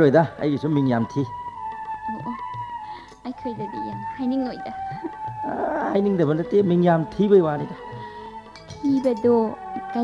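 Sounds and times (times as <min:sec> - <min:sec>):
wavering voices: 0:03.4 - 0:10.0.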